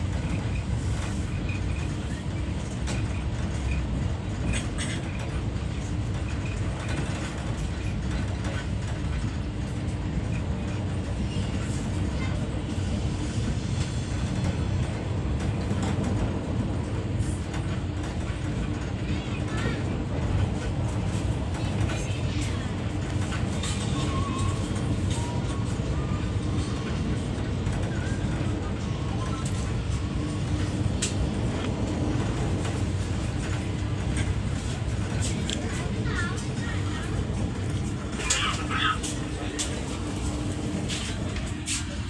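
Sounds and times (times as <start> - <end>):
train body rattle: 0.0 - 42.0
train wheels rumbling on track: 0.0 - 42.0.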